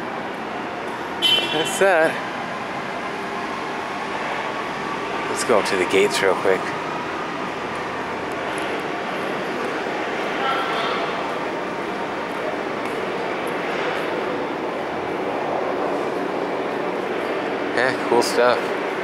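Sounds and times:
rushing outdoor background noise: 0.0 - 19.0.

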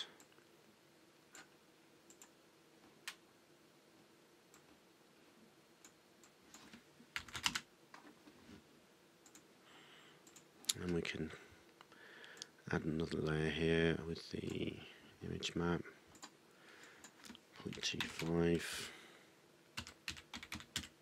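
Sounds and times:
computer mouse clicks: 1.3 - 2.4, 9.2 - 9.5, 10.2 - 11.0.

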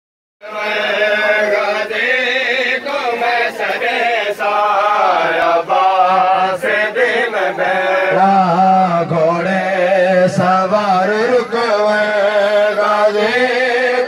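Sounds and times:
men chanting a lament: 0.4 - 14.0.

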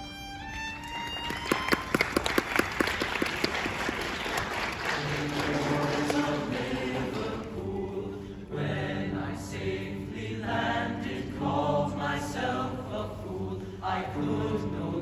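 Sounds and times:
sharp claps: 0.8 - 7.3
male choir singing sustained notes: 4.8 - 15.0.

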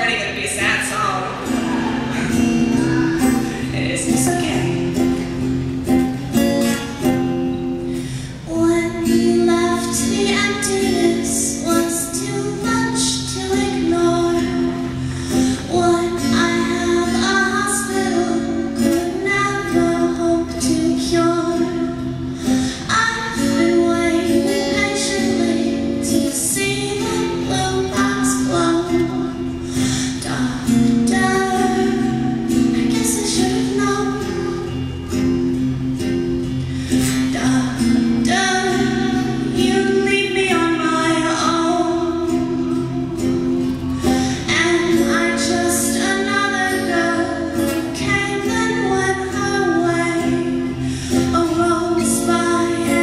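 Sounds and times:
woman singing a sad song: 0.0 - 5.2, 8.0 - 53.0
acoustic guitar: 0.0 - 53.0.

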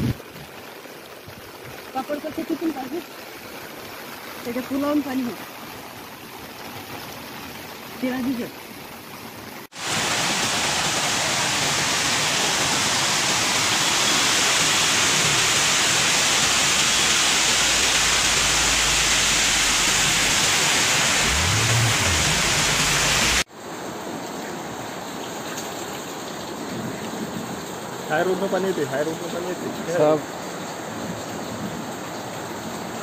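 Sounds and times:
flowing floodwater: 0.0 - 33.0
heavy rain: 0.0 - 33.0.

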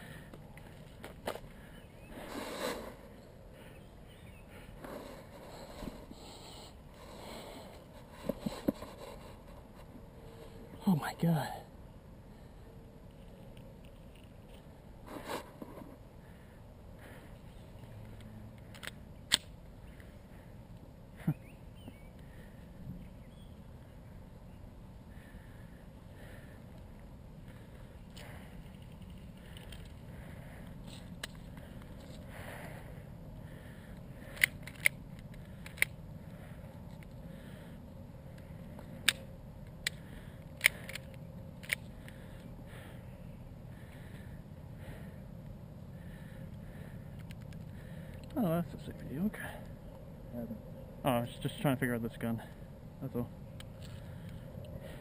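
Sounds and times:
faint steady background noise: 0.0 - 55.0.

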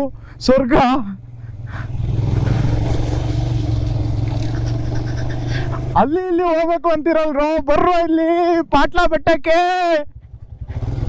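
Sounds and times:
motorcycle engine on dirt track: 0.0 - 6.1, 10.1 - 11.0.

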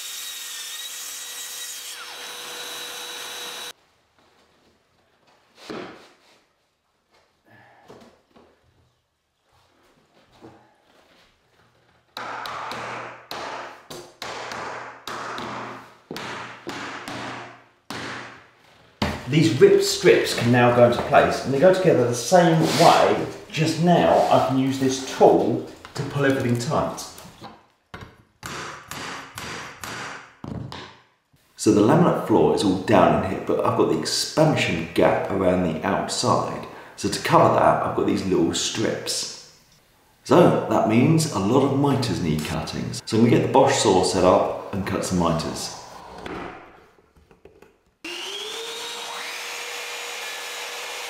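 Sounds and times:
mitre saw running: 0.0 - 3.7, 48.1 - 51.0.

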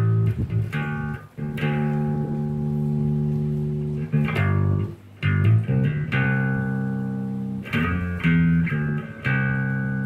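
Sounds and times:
electric bass guitar note: 0.0 - 10.0.

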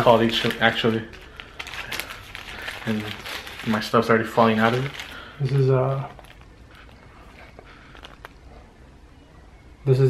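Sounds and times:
paper wrapper crinkling: 0.0 - 8.6.

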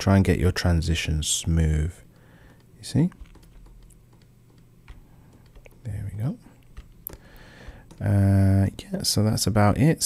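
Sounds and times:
low steady hum: 0.0 - 10.0
computer keyboard keys clicking: 2.1 - 8.4.

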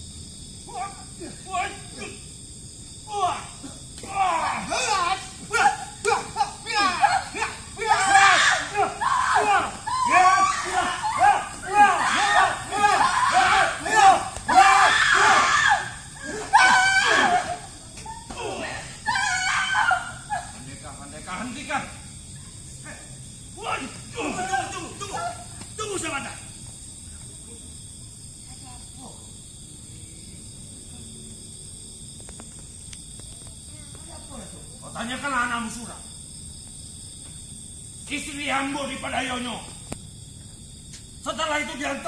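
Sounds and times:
crickets chirring: 0.0 - 42.0
voices screaming and shouting: 0.6 - 26.6.

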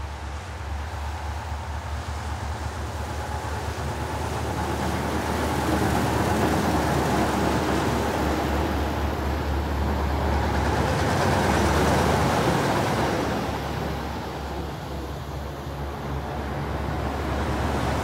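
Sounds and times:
dump truck engines rumbling: 0.0 - 18.0.

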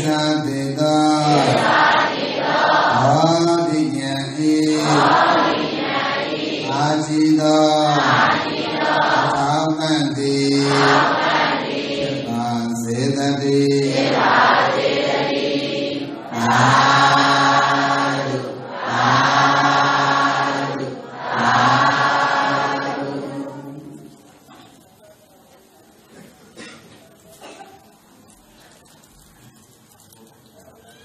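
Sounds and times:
voices chanting: 0.8 - 12.7, 13.8 - 24.1.

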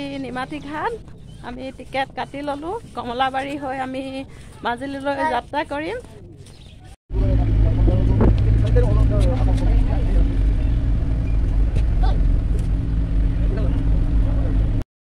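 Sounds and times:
ferry engine drone: 7.1 - 14.8.

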